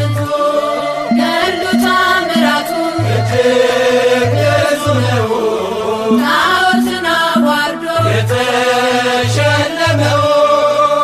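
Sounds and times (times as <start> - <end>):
low bass notes: 0.0 - 7.0, 7.9 - 10.4
person singing a hymn: 0.0 - 11.0.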